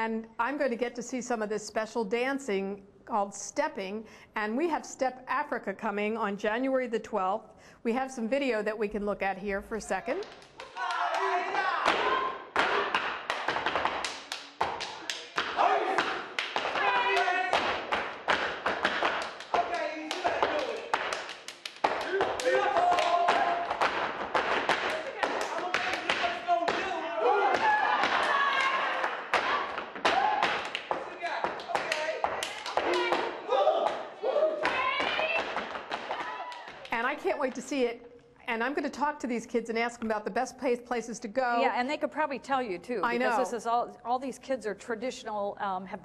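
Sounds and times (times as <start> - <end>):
dancers shouting calls: 10.1 - 13.0, 15.0 - 17.6, 21.9 - 23.8, 24.9 - 36.8
body slaps: 10.2 - 34.0, 34.6 - 36.9
hand claps: 10.2 - 37.6
feet stomping: 10.3 - 37.6.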